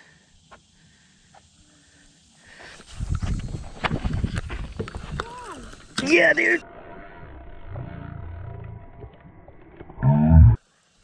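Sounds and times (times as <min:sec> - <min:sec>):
faint low rumble: 0:06.6 - 0:10.6.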